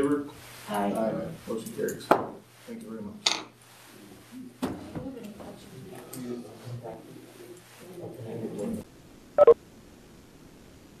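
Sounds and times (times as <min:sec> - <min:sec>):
murmur of voices: 0:04.3 - 0:08.8.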